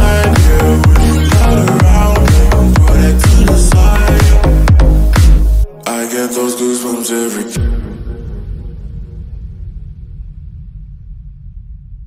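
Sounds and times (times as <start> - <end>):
electronic dance sub-bass rumbling: 0.0 - 5.7.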